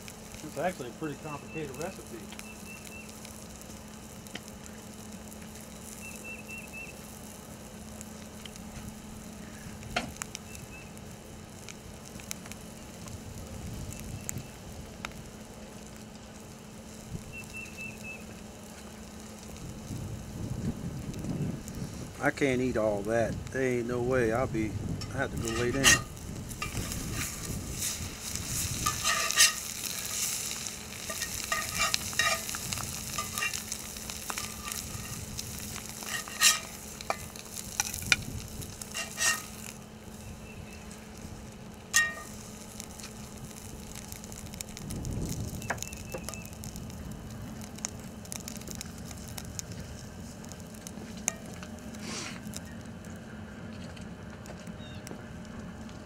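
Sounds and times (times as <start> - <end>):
oil sizzling in a skillet: 0.0 - 22.3, 24.8 - 52.8
metal spatula scraping pan: 25.4 - 27.9, 28.8 - 30.3, 31.1 - 32.6, 33.2 - 33.6, 36.0 - 37.2, 38.9 - 39.6.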